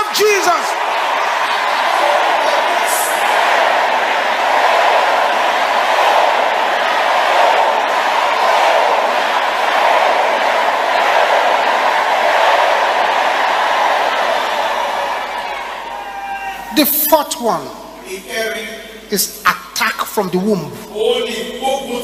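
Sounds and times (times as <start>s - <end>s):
crowd praying aloud: 0.0s - 22.0s.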